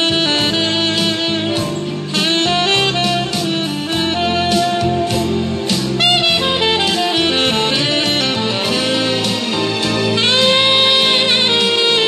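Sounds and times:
bass line: 0.0s - 12.0s
saxophone melody: 0.0s - 12.0s.

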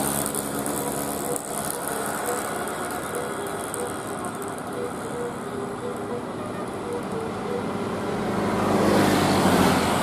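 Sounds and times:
bus engine running slowly: 0.0s - 10.0s
motorcycles passing: 0.0s - 10.0s.

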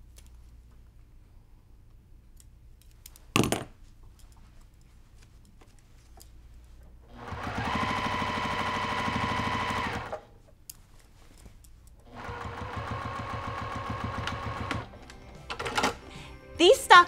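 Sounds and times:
sewing machine stitching: 7.1s - 10.3s, 12.1s - 14.9s.

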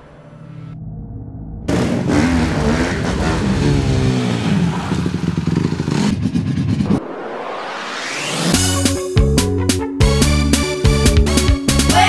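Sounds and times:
motorcycle engine revving: 1.6s - 7.0s.

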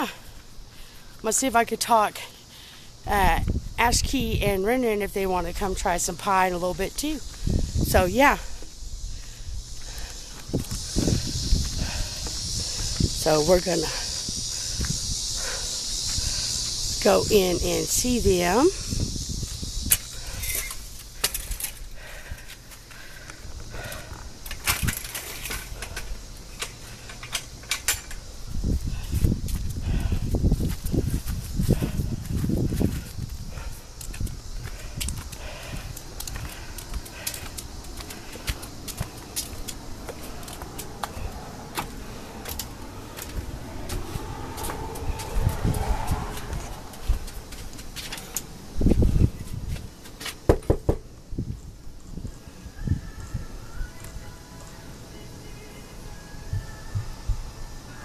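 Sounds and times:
footsteps outdoors: 0.0s - 58.0s
low rumble: 40.6s - 47.9s.

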